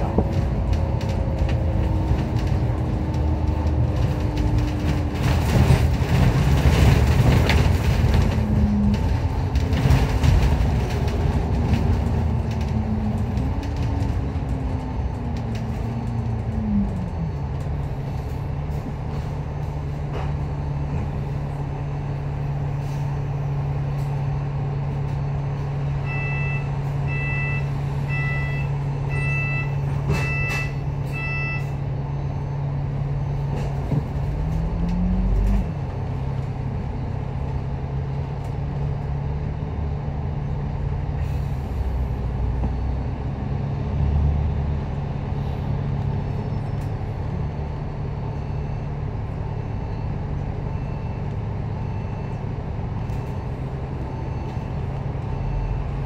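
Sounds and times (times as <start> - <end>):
bus engine idling: 0.0 - 56.0
bus engine revving: 0.0 - 56.0.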